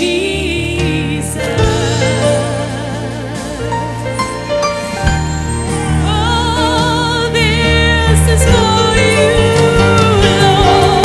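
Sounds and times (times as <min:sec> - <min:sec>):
singers singing with vibrato: 0:00.0 - 0:04.7
band accompaniment with bass: 0:00.0 - 0:11.0.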